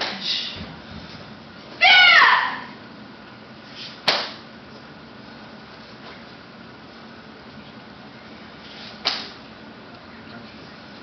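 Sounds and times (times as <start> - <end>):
woman shouting: 1.8 - 2.8
sharp slap: 4.0 - 4.4, 9.0 - 9.4.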